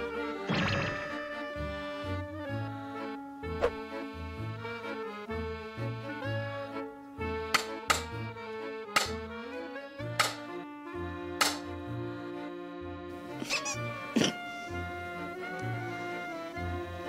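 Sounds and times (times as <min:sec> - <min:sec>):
background music with sustained chords: 0:00.0 - 0:17.0
wooden stick whacks: 0:03.6 - 0:03.8, 0:07.5 - 0:08.2, 0:08.9 - 0:09.2, 0:10.2 - 0:10.5, 0:11.4 - 0:11.7.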